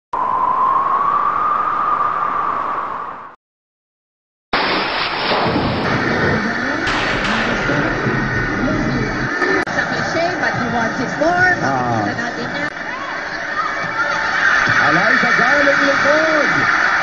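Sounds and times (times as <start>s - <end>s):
rushing whistling sound effect: 0.1s - 3.4s
crowd noise: 5.9s - 17.0s
broadcast commentary voices: 6.2s - 17.0s.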